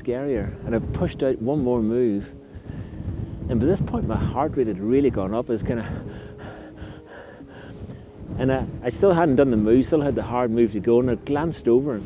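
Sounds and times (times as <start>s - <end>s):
person panting heavily: 5.8s - 8.2s.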